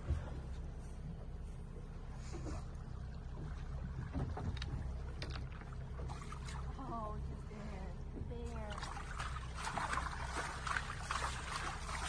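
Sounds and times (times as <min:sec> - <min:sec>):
steady low rumble: 0:00.0 - 0:12.0
water splashing against boat: 0:00.0 - 0:12.0.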